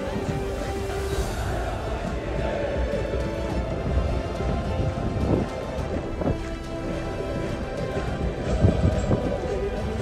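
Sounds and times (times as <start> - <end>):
wind buffeting microphone: 1.4 - 7.0.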